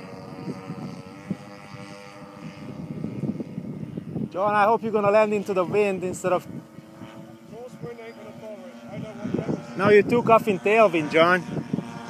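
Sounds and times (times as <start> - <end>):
model airplane engine drone: 0.0 - 12.0.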